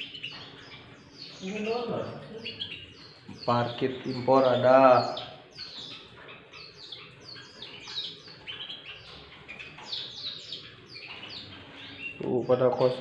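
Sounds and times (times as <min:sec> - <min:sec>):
caged birds chirping: 0:00.0 - 0:13.0.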